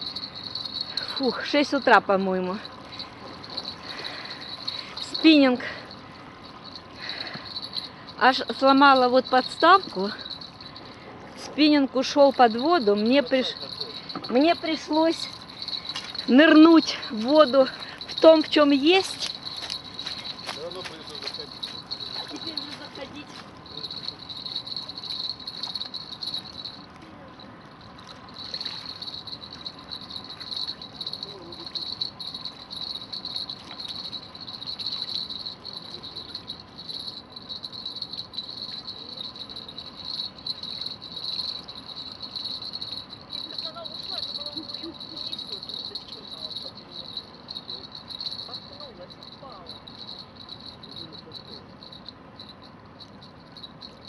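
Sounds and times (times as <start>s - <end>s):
insects trilling: 0.0s - 54.0s.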